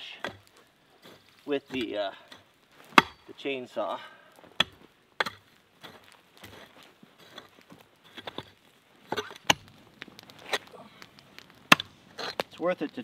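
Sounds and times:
adze blade chopping into dirt: 11.6s - 12.5s.

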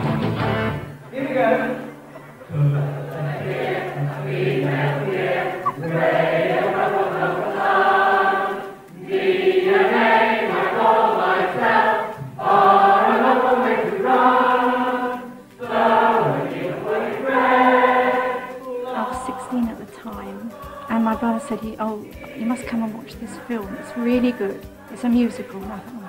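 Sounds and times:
chorus singing: 0.0s - 26.0s.

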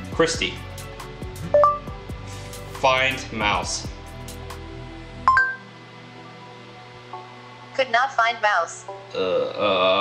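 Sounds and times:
soft background music: 0.0s - 10.0s
rising two-note electronic beep: 1.5s - 1.9s, 5.3s - 5.7s.

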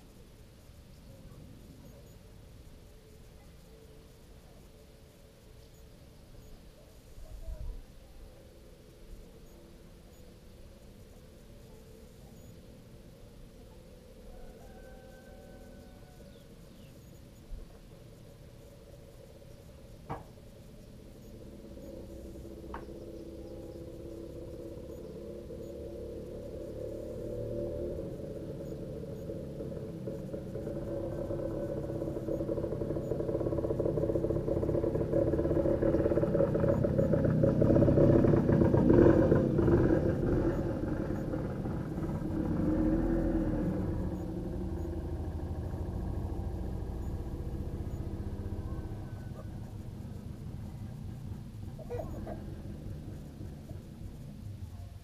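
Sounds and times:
vehicle engine rumbling: 0.0s - 55.0s.

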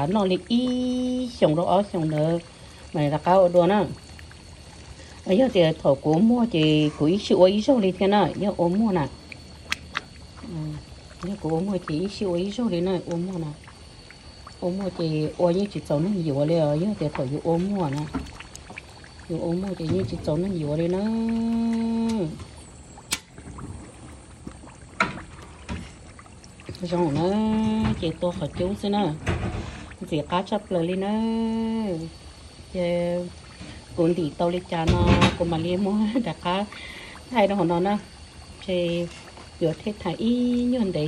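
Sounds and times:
oil sizzling and bubbling in a pan: 0.0s - 41.0s.

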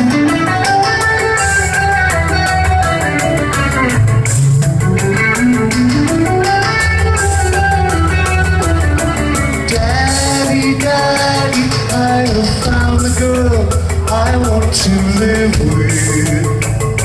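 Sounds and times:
guitars playing: 0.0s - 17.0s
steady drum beat: 0.0s - 17.0s.

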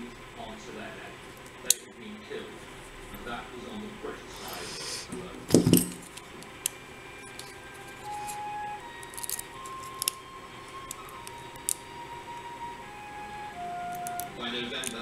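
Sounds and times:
faint background music: 0.0s - 15.0s
lockpick clicking in a lock: 9.0s - 10.2s, 13.9s - 15.0s.

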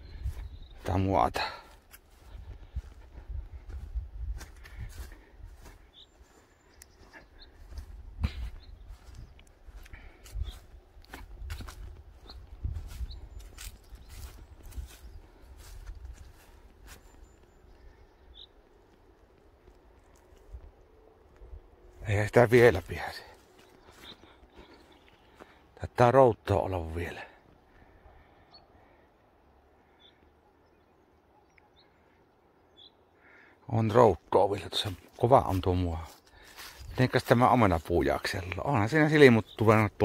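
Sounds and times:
footsteps on dry grass: 0.0s - 25.8s, 34.0s - 40.0s
wind rumbling on microphone: 2.2s - 5.7s, 7.6s - 16.8s.

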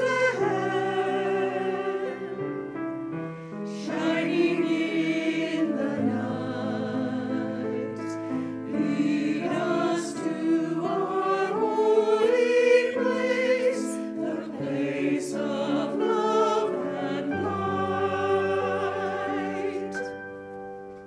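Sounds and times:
choir singing: 0.0s - 2.9s, 3.7s - 20.2s
keyboard accompaniment: 0.0s - 21.0s.

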